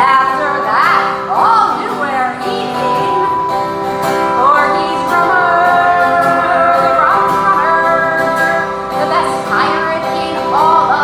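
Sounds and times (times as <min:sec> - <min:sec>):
acoustic guitar accompaniment: 0:00.0 - 0:11.0
voices singing held notes: 0:00.4 - 0:11.0.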